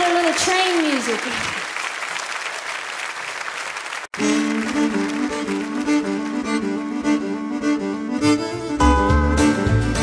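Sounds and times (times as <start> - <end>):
bass: 4.2 - 10.0.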